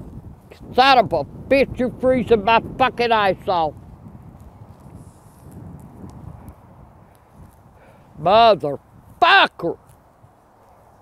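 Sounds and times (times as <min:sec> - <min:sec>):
wind rumble on microphone: 0:00.0 - 0:11.0
soft clicks from clothing: 0:04.0 - 0:07.7, 0:09.8 - 0:10.9.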